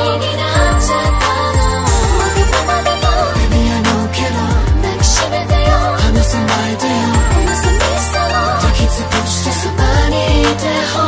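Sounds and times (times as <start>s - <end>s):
steady bass: 0.0s - 11.0s
woman singing: 0.0s - 11.0s
booming kick drums: 0.6s - 6.5s, 7.2s - 9.1s, 9.8s - 10.6s.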